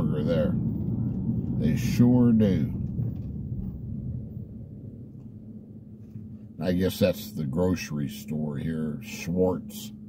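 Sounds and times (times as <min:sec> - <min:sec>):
vehicle engine and tyres rumbling: 0:00.0 - 0:10.0.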